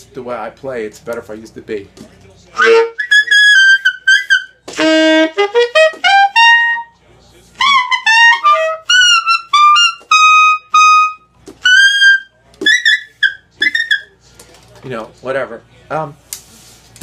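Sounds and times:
saxophone playing high notes: 2.6 - 6.9, 7.6 - 14.0.

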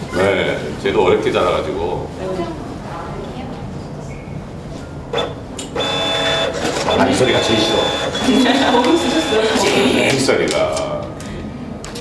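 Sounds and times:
receipt printer printing: 5.2 - 10.1.

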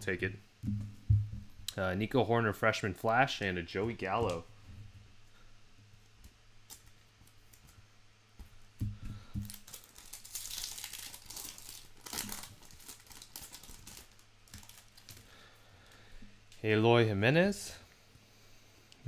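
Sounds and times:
soft thumps: 0.6 - 1.7
card pack wrapper crinkling: 9.4 - 15.3.

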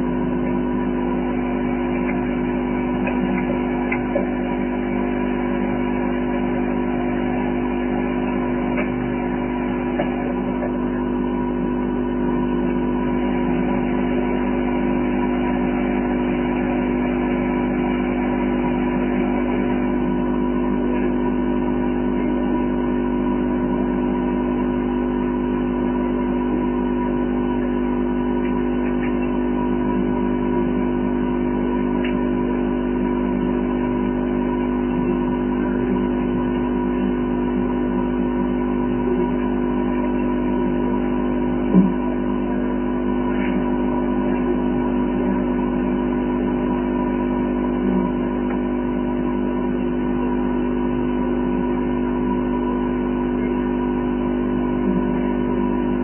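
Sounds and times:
steady hum of held tones: 0.0 - 56.0.

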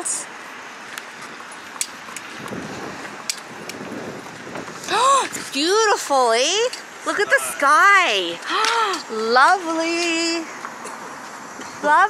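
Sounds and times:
wind on microphone: 2.3 - 5.9.

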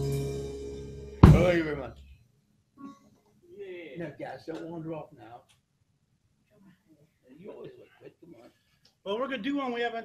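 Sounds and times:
acoustic guitar and keyboard chord: 0.0 - 1.7
sharp hit: 1.2 - 1.8.

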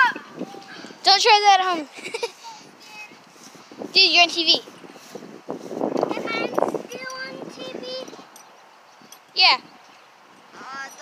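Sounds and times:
children calling out: 0.0 - 1.0
child yelling: 0.0 - 1.9
rough rustle: 1.9 - 10.7.

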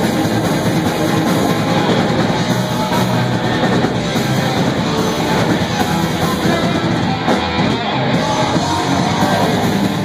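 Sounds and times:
drum kit: 0.0 - 10.0
electric guitar: 0.0 - 10.0.

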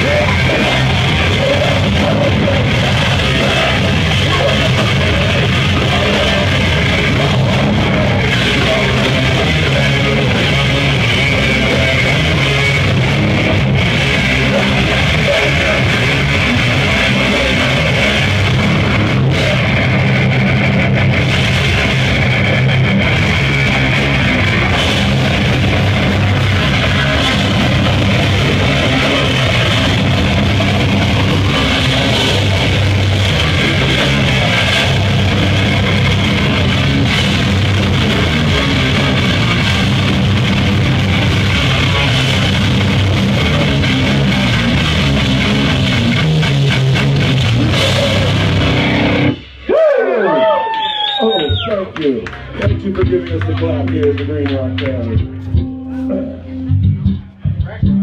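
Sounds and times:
live rock band playing: 0.0 - 49.7, 51.3 - 58.0
drums: 0.0 - 58.0
electric guitar: 0.0 - 58.0.

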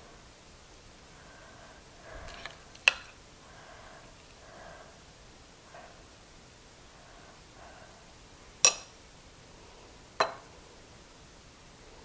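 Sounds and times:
metal spoon clinking on glass bowl: 8.6 - 8.9.

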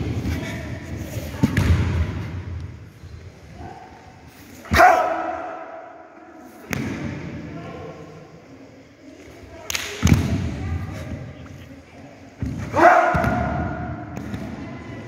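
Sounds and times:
person shouting kiai: 4.7 - 5.6.

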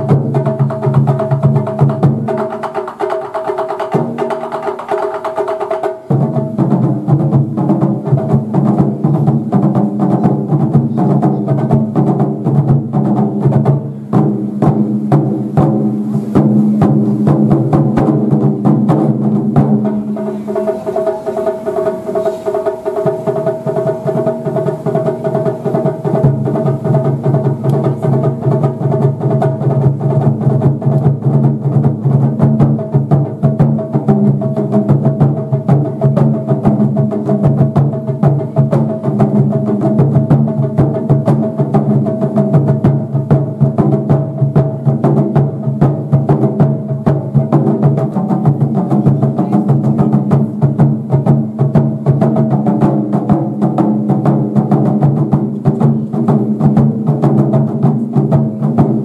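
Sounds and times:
large barrel drums strikes: 0.0 - 59.0
small tight drum hits: 0.0 - 59.0.

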